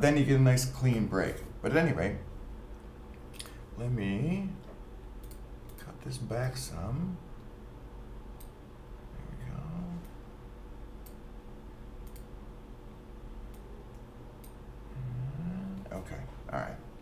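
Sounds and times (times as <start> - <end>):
low electrical hum: 0.0 - 17.0
computer mouse clicks: 5.2 - 5.8, 12.0 - 12.3
man murmuring: 14.9 - 16.8.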